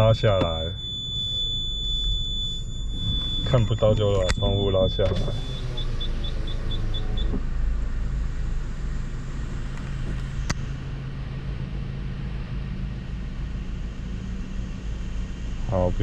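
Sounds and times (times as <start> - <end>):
parking sensor beeping: 0.0 - 7.4
power window motor whirring: 0.0 - 7.6
car engine idling: 0.0 - 16.0
click: 9.7 - 10.6.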